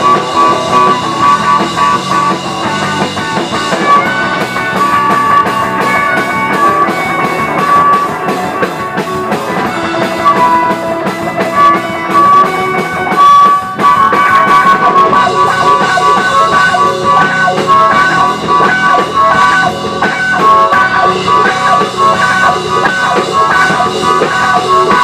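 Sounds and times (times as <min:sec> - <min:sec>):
amplified harmonica: 0:00.0 - 0:25.0
blues-rock band playing: 0:00.0 - 0:25.0.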